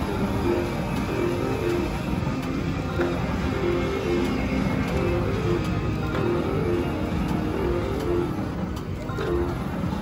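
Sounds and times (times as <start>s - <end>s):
slot machine reels clicking to stop: 0.0s - 10.0s
slot machine reels spinning: 0.0s - 10.0s.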